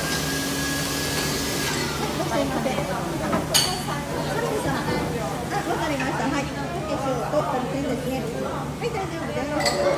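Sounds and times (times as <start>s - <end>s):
restaurant background noise: 0.0s - 9.9s.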